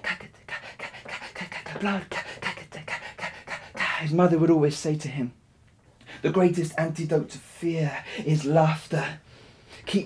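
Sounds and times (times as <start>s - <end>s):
man making rhythmic breathy huffs: 0.0s - 4.1s.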